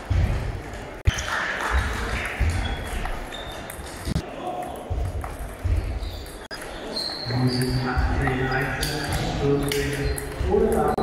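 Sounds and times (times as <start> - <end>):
background chatter: 0.6 - 11.0.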